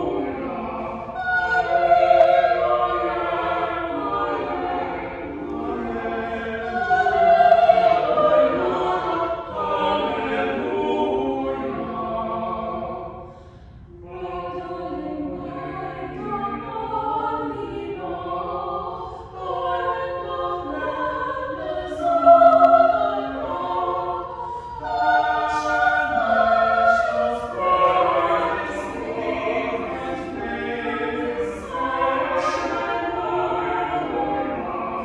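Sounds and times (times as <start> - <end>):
choir singing held notes: 0.0 - 35.0.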